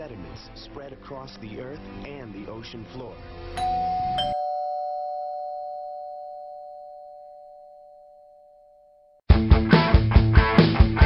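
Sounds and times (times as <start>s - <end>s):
two-note doorbell chime: 3.6s - 9.2s
loud rock music: 9.3s - 11.0s.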